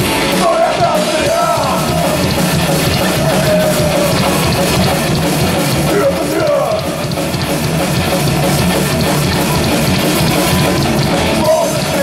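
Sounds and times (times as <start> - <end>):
vocalist singing: 0.0 - 7.1, 11.2 - 12.0
bass guitar: 0.0 - 12.0
distorted electric guitar: 0.0 - 12.0
drum kit: 0.0 - 12.0.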